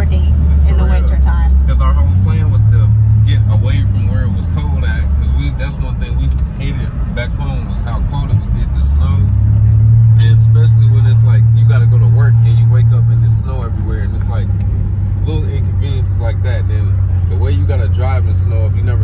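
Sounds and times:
voices: 0.0 - 9.3, 10.1 - 14.6, 15.2 - 19.0
car engine drone: 0.0 - 19.0
road noise inside car: 0.0 - 19.0.

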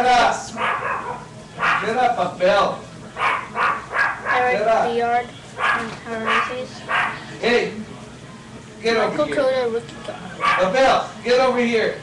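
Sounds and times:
dog barking and yipping: 0.5 - 2.0, 3.2 - 4.6, 5.6 - 7.3, 10.4 - 10.8.

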